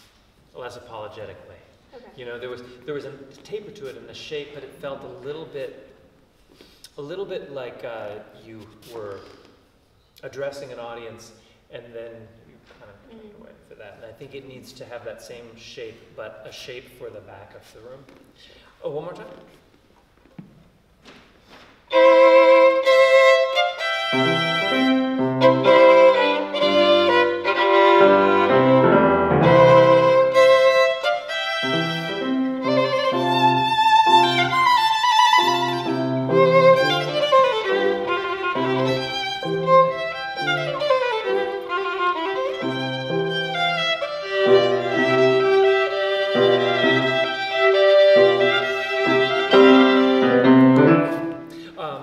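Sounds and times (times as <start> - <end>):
violin melody: 21.9 - 51.5
piano accompaniment: 21.9 - 51.6.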